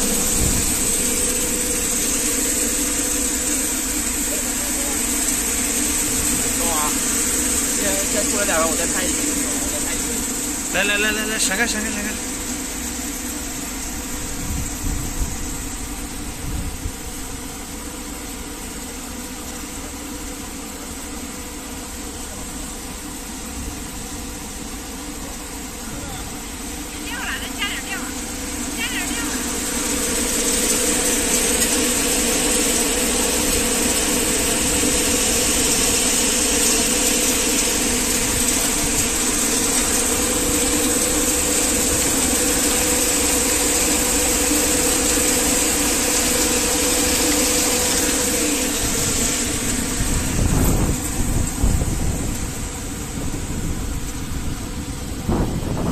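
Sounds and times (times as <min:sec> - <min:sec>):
low rumbles: 0:00.0 - 0:17.6
machine motors humming: 0:00.0 - 0:55.9.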